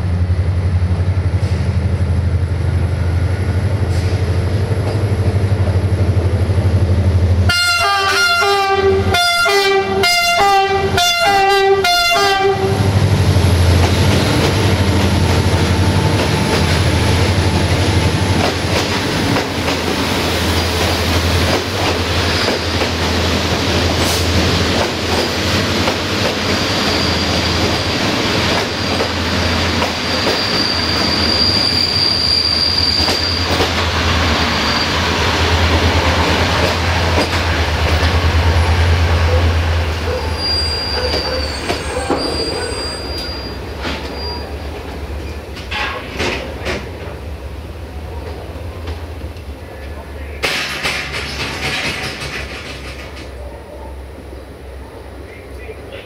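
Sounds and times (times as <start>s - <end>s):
locomotive engine rumbling: 0.0s - 56.0s
train horn short blasts: 7.5s - 12.9s
thin wheel squeal: 30.3s - 33.4s, 40.2s - 44.5s
wheels clattering over rails: 35.7s - 38.2s, 50.4s - 53.4s.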